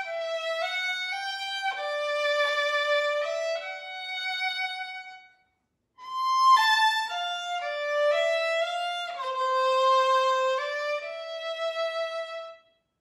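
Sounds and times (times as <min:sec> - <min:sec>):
solo violin bowed: 0:00.0 - 0:05.3, 0:06.0 - 0:12.7.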